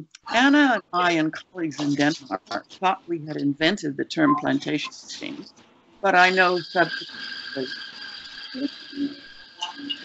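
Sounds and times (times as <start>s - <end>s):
high-pitched background whine: 0.0s - 10.0s.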